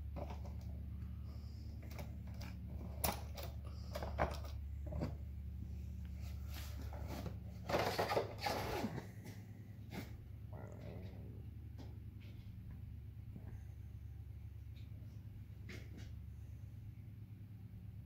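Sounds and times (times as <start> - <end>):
steady low hum: 0.0 - 18.0
scuffling handling noise: 1.8 - 10.2.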